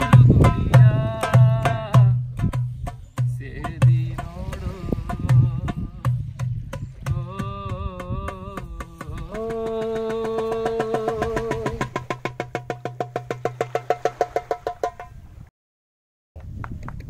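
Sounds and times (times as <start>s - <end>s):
man singing: 0.0s - 2.5s, 3.2s - 12.1s
darbuka drumming: 0.0s - 15.2s.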